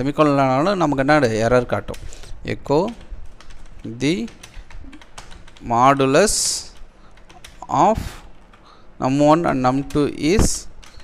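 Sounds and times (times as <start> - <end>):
computer keyboard typing: 0.1 - 11.0.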